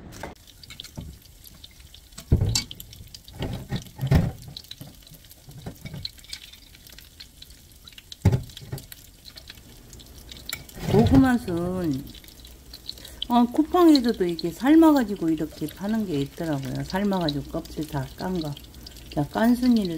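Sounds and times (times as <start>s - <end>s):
plastic spatula stirring in pan: 0.2s - 19.9s
liquid poured into a pan: 0.3s - 19.9s
knocks against a pan: 2.2s - 2.7s, 8.2s - 8.9s.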